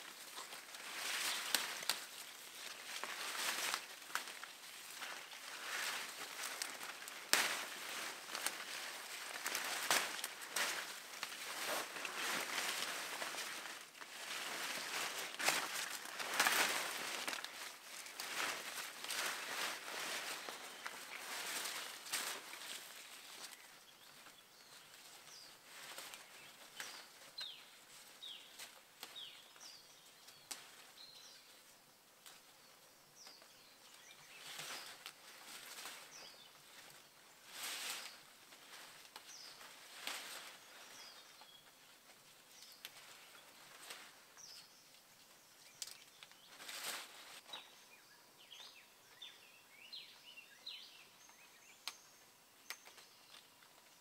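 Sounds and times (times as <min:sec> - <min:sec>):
leafy vines rustling: 0:00.0 - 0:54.0
small birds chirping: 0:00.0 - 0:54.0.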